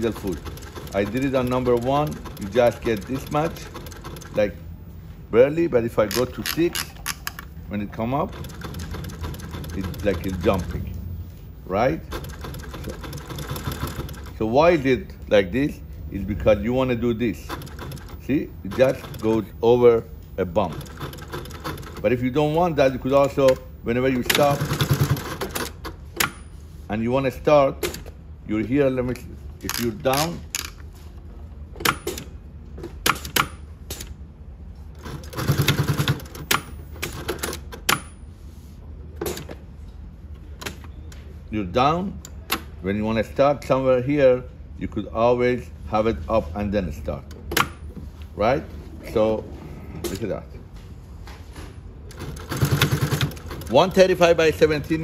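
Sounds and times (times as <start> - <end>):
sewing machine stitching: 0.0 - 4.5, 8.1 - 10.9, 12.0 - 14.4, 17.4 - 19.5, 20.5 - 22.1, 23.2 - 25.9, 35.0 - 37.6, 52.1 - 54.0.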